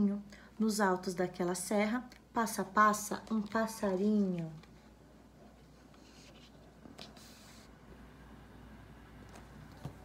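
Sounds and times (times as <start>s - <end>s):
quiet room hum: 0.0s - 10.0s
paper pages rustling: 2.9s - 7.5s.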